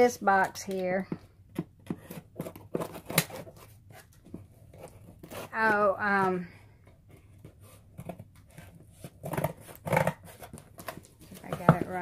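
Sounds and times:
scissors cutting packing tape: 0:02.0 - 0:03.6.

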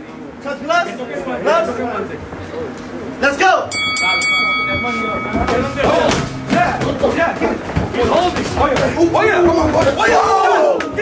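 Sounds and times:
boxing ring bell ringing: 0:03.7 - 0:08.0.

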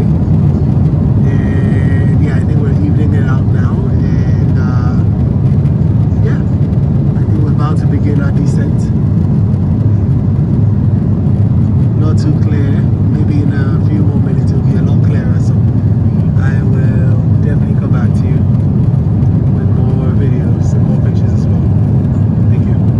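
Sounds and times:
airliner cabin engine rumble: 0:00.0 - 0:22.9.

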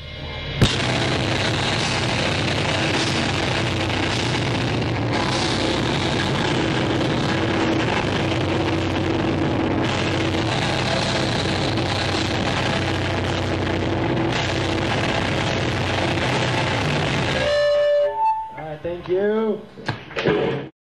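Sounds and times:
live rock band playing: 0:00.6 - 0:18.6.

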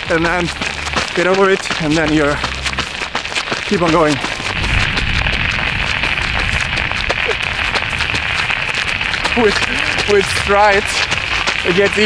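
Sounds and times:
running footsteps on pavement: 0:00.0 - 0:12.0
wind noise on microphone: 0:02.0 - 0:12.0.

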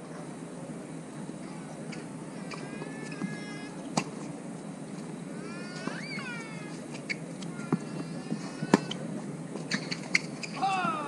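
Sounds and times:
shoe squeaking on hard court: 0:05.7 - 0:10.6.

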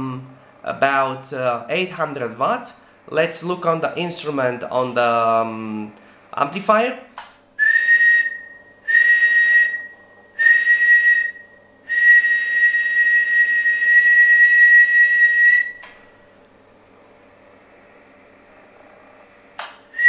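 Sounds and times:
person whistling a high note: 0:07.6 - 0:15.9.

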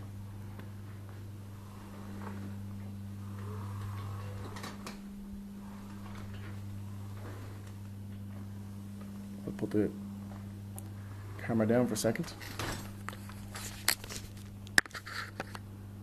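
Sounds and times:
wheelchair drive humming: 0:00.0 - 0:14.8
faint shifting noise: 0:00.0 - 0:15.7.

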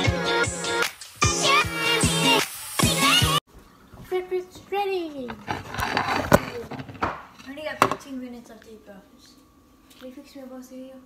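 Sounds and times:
background music: 0:00.0 - 0:03.4.

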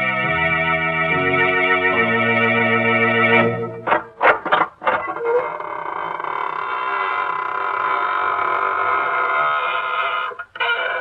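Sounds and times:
door creaking open: 0:03.9 - 0:11.0.

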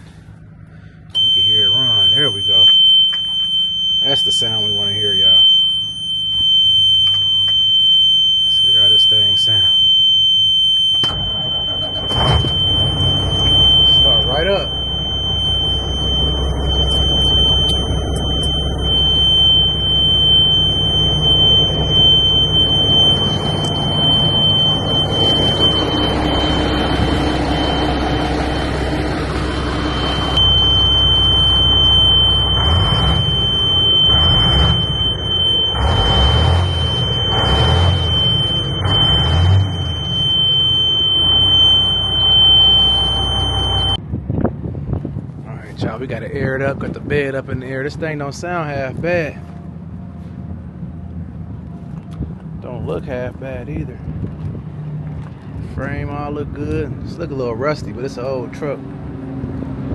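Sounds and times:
diesel engine starting and running: 0:00.0 - 0:59.9
high-pitched warning buzzer: 0:29.7 - 0:44.0.

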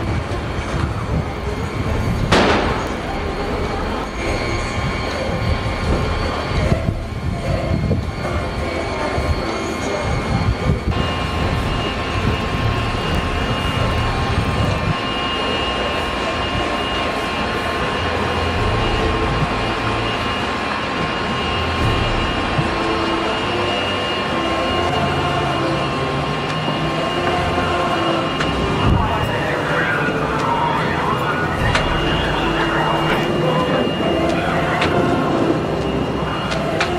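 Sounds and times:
indistinct voices: 0:00.0 - 0:36.9
machinery rumble: 0:00.0 - 0:36.9
thin high whine: 0:00.0 - 0:36.9
wind: 0:00.0 - 0:36.9.

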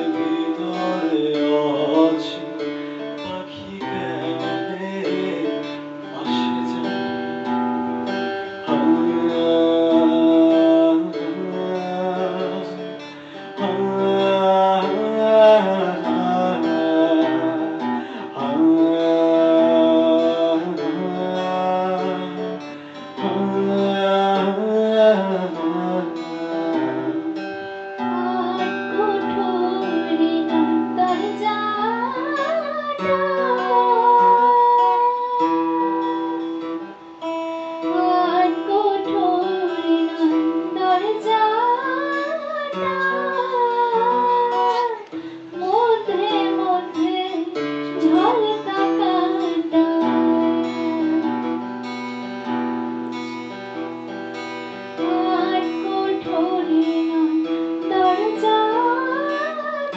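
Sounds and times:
woman singing: 0:00.0 - 0:07.0, 0:08.3 - 0:36.9, 0:37.8 - 0:51.9, 0:54.8 - 0:59.9
acoustic guitar strumming: 0:00.0 - 0:59.9.

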